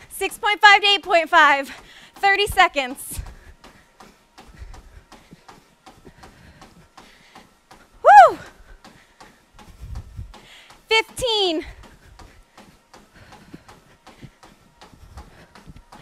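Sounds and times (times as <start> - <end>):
footfalls on treadmill belt: 0.0 - 16.0
woman whooping: 8.0 - 8.6.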